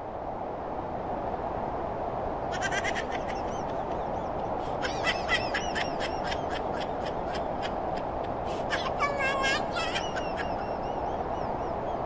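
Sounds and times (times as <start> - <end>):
low background rush: 0.0 - 12.0
person laughing: 2.5 - 4.0, 4.7 - 10.8.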